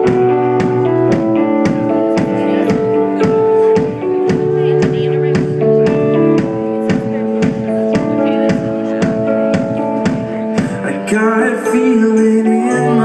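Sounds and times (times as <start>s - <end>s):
drum kit steady beat: 0.0s - 13.0s
live band playing: 0.0s - 13.0s
sustained guitar chords: 0.0s - 13.0s.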